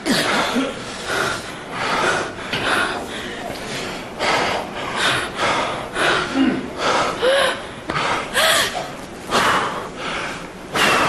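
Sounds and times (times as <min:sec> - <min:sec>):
person gasping for breath: 0:04.2 - 0:11.0.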